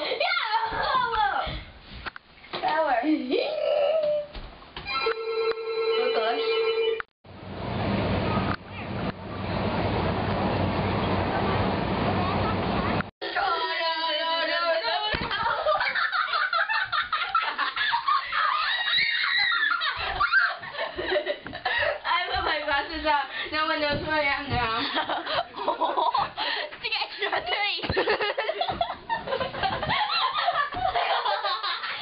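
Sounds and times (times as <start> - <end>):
girls shrieking with laughter: 15.4 - 21.1.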